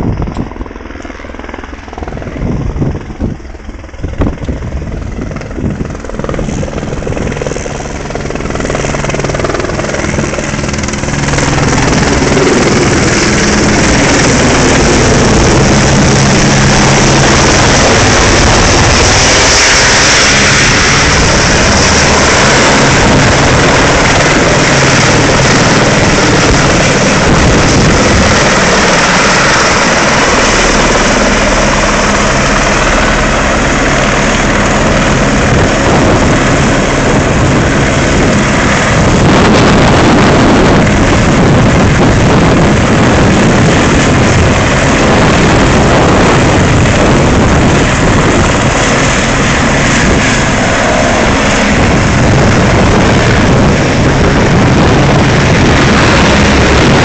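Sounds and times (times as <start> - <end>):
helicopter rotor and turbine: 0.0 - 57.0.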